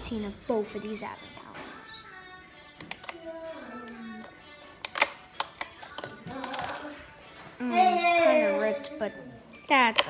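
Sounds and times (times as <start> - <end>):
background music with held notes: 0.0 - 10.0
cardboard clicks and snaps: 4.8 - 6.9.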